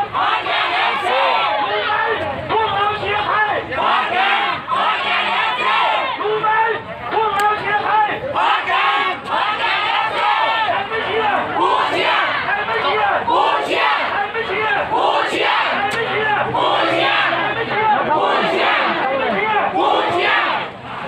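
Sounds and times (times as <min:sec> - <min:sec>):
football crowd shouting: 0:00.0 - 0:21.0.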